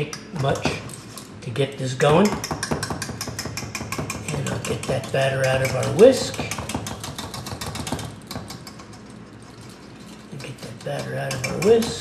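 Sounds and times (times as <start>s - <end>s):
whisk clicking against metal bowl: 2.2s - 9.2s, 10.3s - 12.0s.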